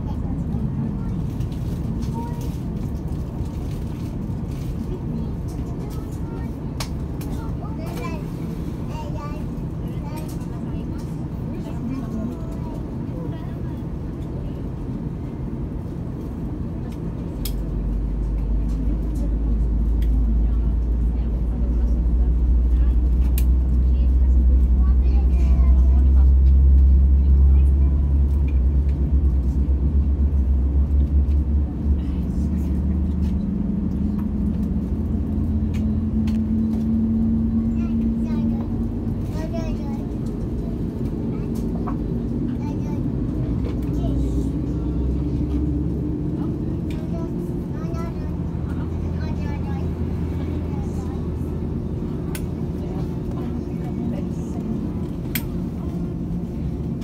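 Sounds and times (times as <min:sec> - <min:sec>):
airplane cabin hum: 0:00.0 - 0:57.0
faint voices: 0:00.0 - 0:57.0.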